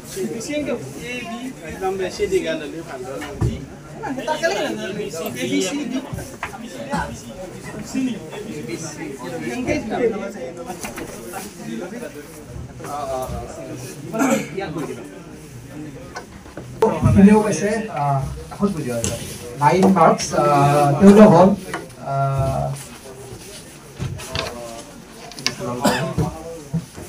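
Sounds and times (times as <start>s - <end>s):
people talking indistinctly: 0.0s - 27.0s.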